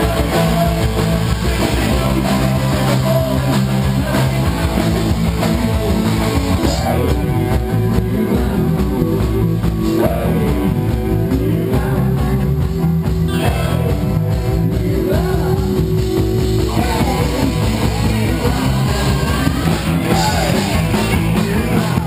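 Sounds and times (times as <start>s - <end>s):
person singing: 0.0s - 12.7s, 13.3s - 16.0s, 16.6s - 22.0s
bass guitar: 0.0s - 22.0s
drum kit: 0.0s - 22.0s
electric guitars: 0.0s - 22.0s.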